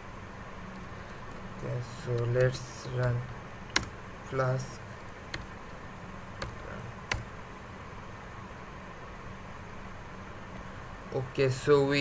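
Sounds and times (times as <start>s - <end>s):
low room hiss: 0.0s - 12.0s
keyboard keystrokes: 2.1s - 4.0s, 5.3s - 5.5s, 6.4s - 7.3s.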